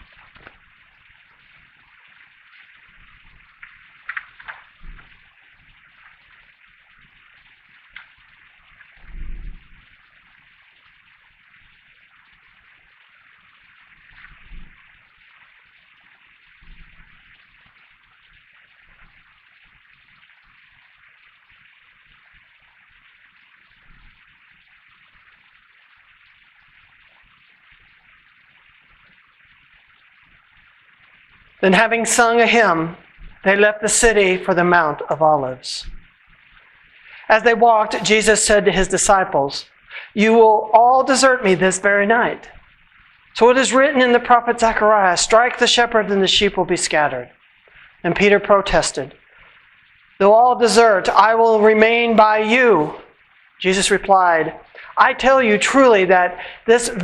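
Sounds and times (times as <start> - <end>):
faint steady hiss: 0.0 - 57.0.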